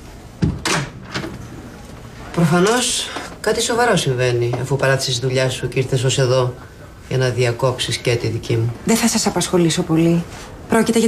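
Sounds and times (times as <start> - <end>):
office door shutting: 0.4 - 1.7.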